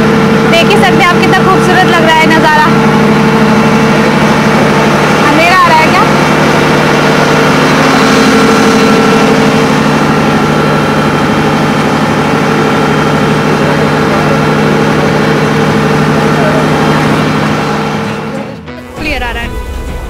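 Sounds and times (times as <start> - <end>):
boat engine drone: 0.0 - 20.0.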